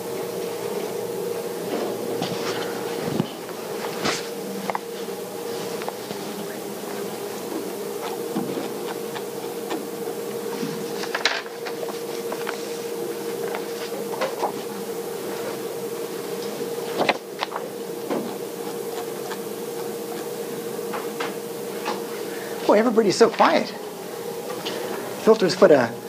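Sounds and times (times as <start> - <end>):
steady mid-pitched hum: 0.0 - 26.0
paper rustling: 2.2 - 15.6, 16.2 - 20.3.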